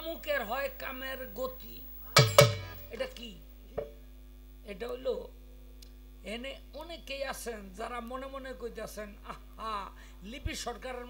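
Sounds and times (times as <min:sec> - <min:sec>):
sharp percussion strikes: 0:02.2 - 0:03.0.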